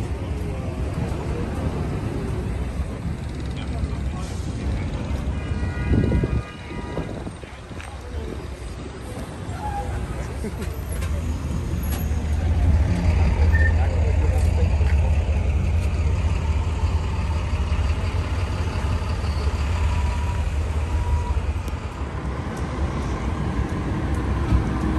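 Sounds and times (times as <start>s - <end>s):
street traffic rumble: 0.0s - 24.9s.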